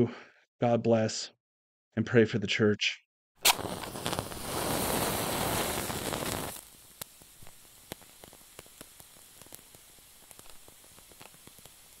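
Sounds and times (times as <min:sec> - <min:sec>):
lighter flame hissing: 0:03.4 - 0:12.0
wick burning with faint crackles: 0:03.4 - 0:12.0.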